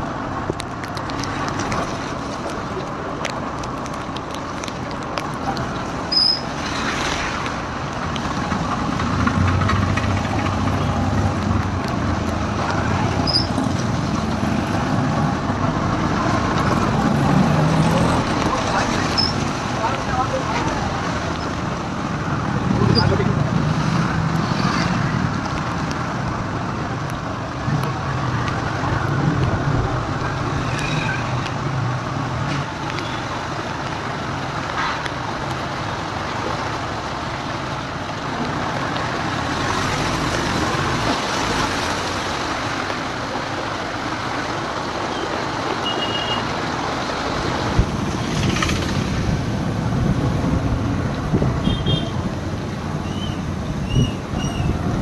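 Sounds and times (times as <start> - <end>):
motorcycle engines: 0.0 - 55.0
street traffic: 0.0 - 55.0
tyres swishing through water: 0.0 - 55.0.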